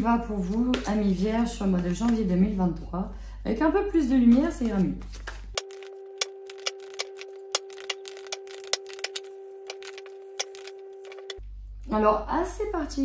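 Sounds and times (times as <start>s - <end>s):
sharp clicks: 5.6s - 11.4s
steady held tone: 5.6s - 11.4s.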